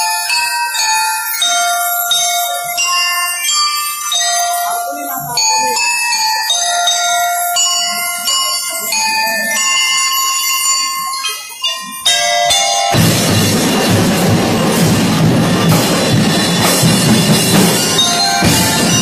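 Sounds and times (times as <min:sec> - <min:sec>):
bell lyres playing melody: 0:00.0 - 0:19.0.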